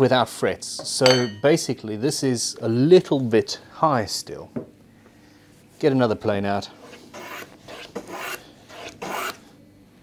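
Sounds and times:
hand plane cutting wood: 0:07.2 - 0:09.4.

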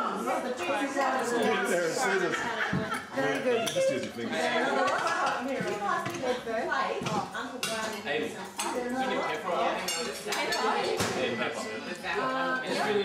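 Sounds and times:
table conversation: 0:00.0 - 0:13.0
cutlery and plates clinking: 0:02.7 - 0:12.0.

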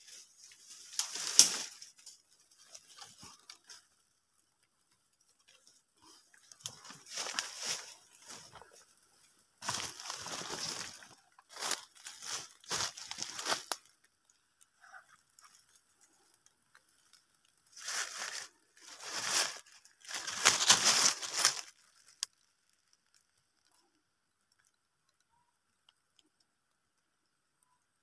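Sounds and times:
dry leaves rustling and crunching: 0:00.0 - 0:03.9, 0:05.5 - 0:09.0, 0:09.6 - 0:14.0, 0:17.0 - 0:23.3.

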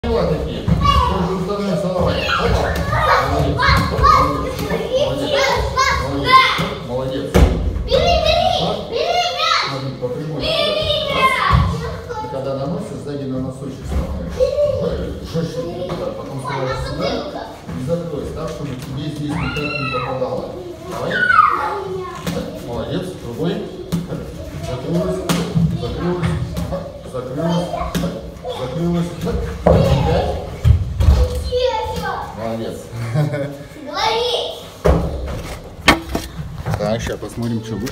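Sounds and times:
children chattering and calling: 0:00.0 - 0:13.3, 0:13.9 - 0:37.9
child's voice: 0:02.2 - 0:06.6, 0:20.6 - 0:22.3, 0:31.1 - 0:32.4, 0:33.8 - 0:34.7.

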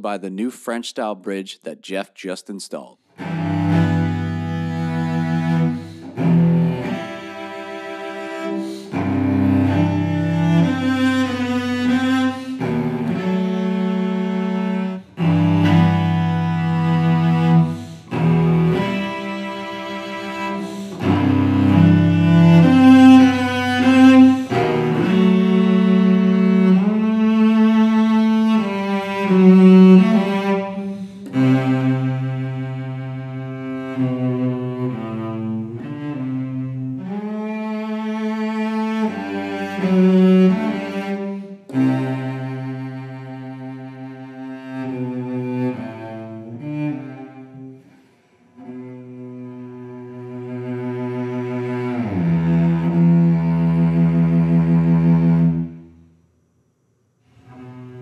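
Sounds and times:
bowed cello melody: 0:03.1 - 0:56.0, 0:57.3 - 0:58.0.

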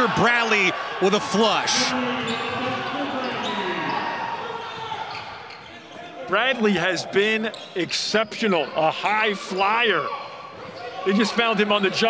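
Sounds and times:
players calling out: 0:00.0 - 0:12.0.

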